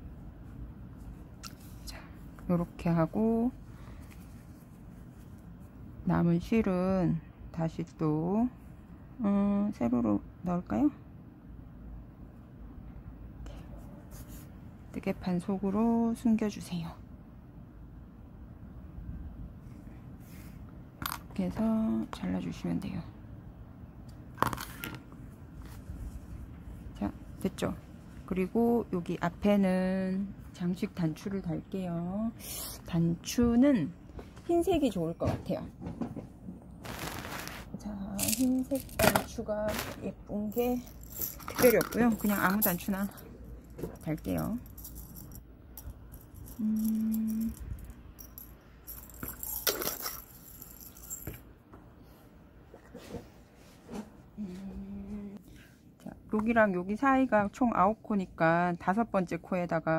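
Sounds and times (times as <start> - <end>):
buttons rattling in glass jar: 38.2 - 39.1, 40.5 - 51.5.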